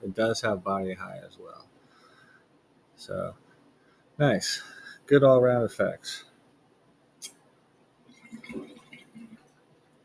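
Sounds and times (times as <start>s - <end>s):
water bong gurgling: 8.1s - 9.5s.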